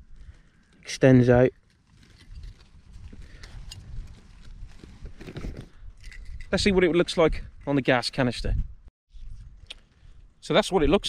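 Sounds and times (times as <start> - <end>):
wind rumble on microphone: 2.0 - 11.0.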